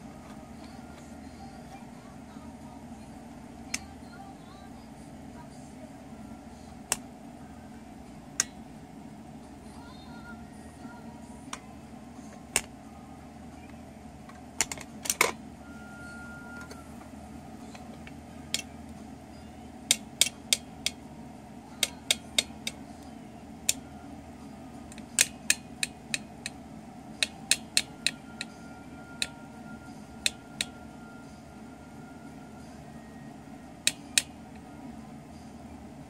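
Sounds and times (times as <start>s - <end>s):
steady low hum: 0.0s - 36.0s
tapping clicks on plastic toy drill: 27.2s - 28.5s, 33.9s - 34.3s.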